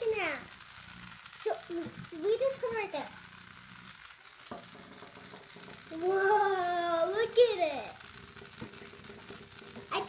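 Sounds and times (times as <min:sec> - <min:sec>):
small toy motor running: 0:00.0 - 0:10.0.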